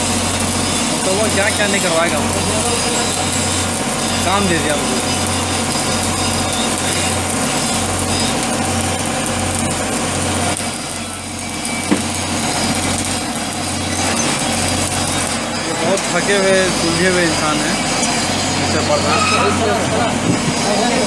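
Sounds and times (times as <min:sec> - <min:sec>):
welding arc crackling: 0:00.0 - 0:21.0.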